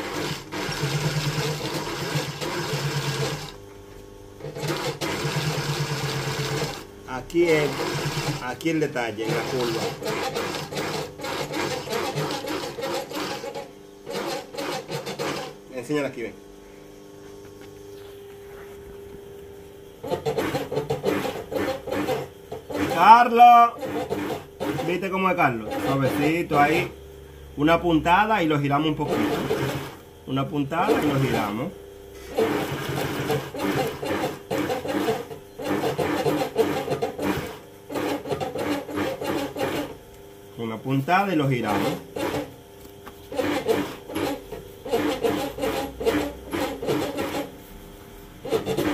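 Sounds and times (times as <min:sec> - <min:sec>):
industrial sewing machine stitching: 0:00.0 - 0:03.6, 0:04.4 - 0:15.6, 0:20.0 - 0:26.9, 0:28.5 - 0:40.0, 0:41.4 - 0:42.6, 0:43.3 - 0:47.5, 0:48.4 - 0:48.9.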